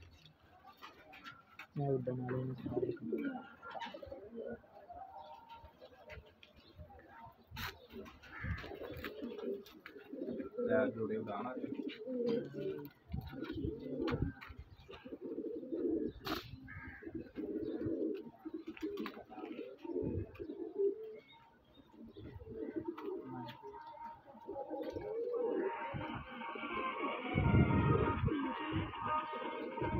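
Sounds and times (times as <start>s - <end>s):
pigeons cooing: 0.0s - 6.8s, 7.4s - 29.9s.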